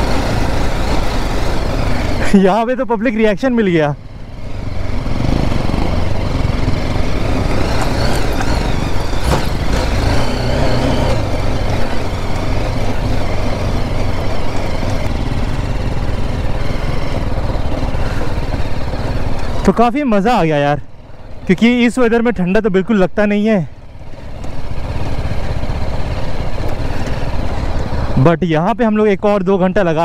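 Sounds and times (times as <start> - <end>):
motorcycle engine running at low speed: 0.0 - 30.0.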